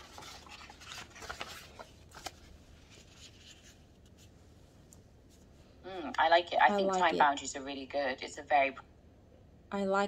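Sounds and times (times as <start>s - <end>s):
paper sheets rustling: 0.0s - 4.4s.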